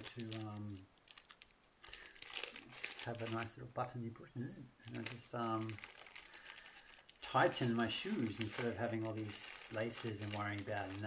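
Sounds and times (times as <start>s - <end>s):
hands handling small objects: 0.0s - 3.6s, 4.9s - 11.0s.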